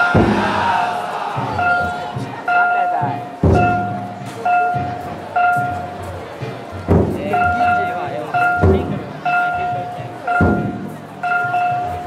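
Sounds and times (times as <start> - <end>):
taiko drum beats: 0.0 - 12.0.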